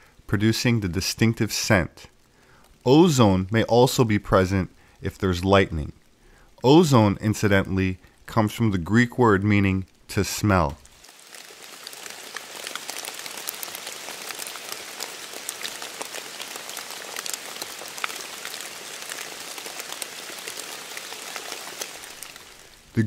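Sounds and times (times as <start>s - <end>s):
steady rain falling: 0.0s - 23.0s.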